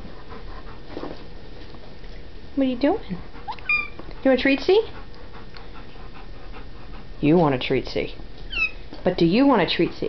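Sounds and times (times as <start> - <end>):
dog panting: 0.0 - 1.3, 3.0 - 7.9, 9.3 - 10.0.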